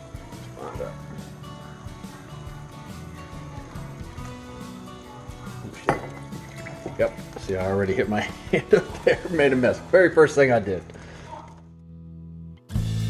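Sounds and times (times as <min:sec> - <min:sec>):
background music: 0:00.0 - 0:13.0
glass clinking: 0:05.6 - 0:07.5.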